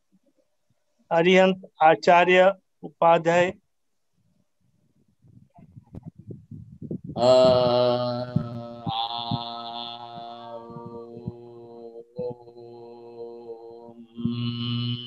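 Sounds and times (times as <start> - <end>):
man chanting in low held tones: 7.1 - 15.0.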